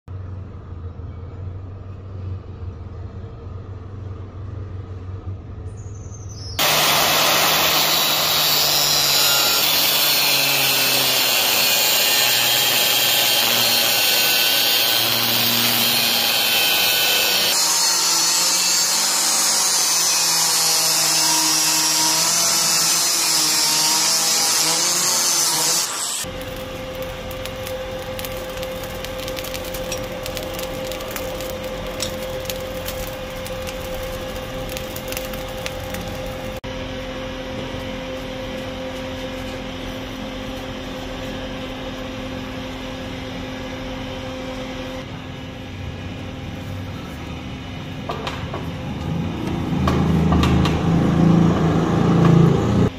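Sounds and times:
forge fire burning: 0:06.6 - 0:19.9, 0:26.2 - 0:43.3
angle grinder cutting steel: 0:06.6 - 0:36.6.

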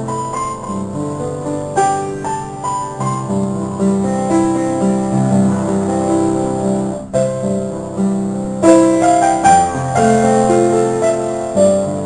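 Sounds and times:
piano music: 0:00.0 - 0:12.0.

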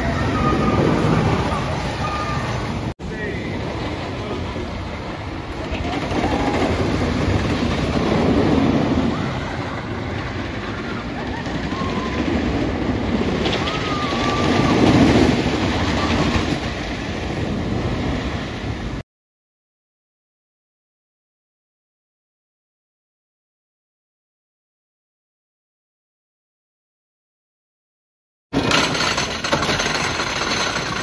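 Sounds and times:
roller coaster rumbling and clattering: 0:00.0 - 0:19.0, 0:28.6 - 0:31.0.

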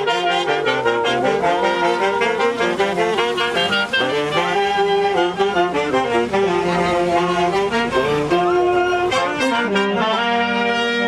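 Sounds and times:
wind band with saxophones and brass: 0:00.0 - 0:11.0.

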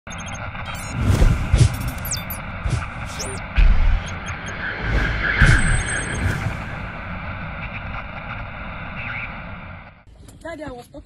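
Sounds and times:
high electronic beeps: 0:00.1 - 0:07.0
steady rushing noise: 0:00.2 - 0:10.1.

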